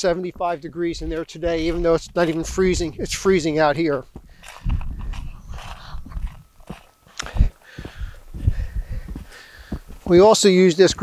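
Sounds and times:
footsteps on snow: 0.0 - 11.0.

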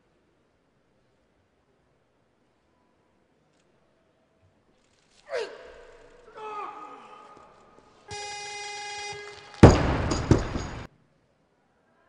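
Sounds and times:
electronic buzzer: 8.1 - 9.7
barbell crashing onto platform: 9.5 - 10.9.

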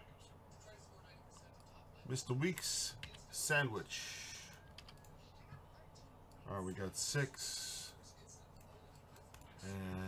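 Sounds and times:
computer keyboard and mouse clicks: 4.7 - 5.1.

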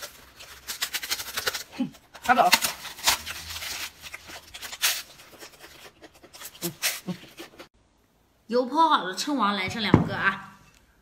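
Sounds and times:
crisp crunching and chewing: 0.0 - 7.7.

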